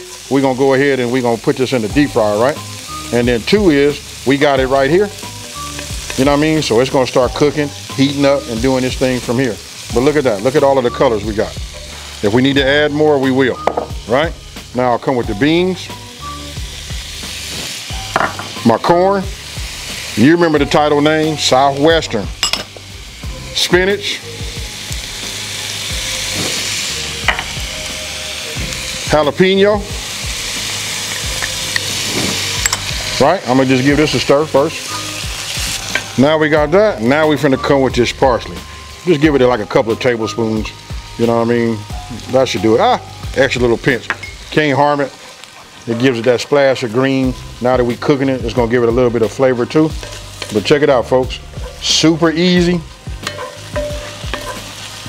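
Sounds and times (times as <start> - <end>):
food sizzling in a skillet: 0.0 - 55.0
spatula tapping and scraping pan: 53.2 - 54.7.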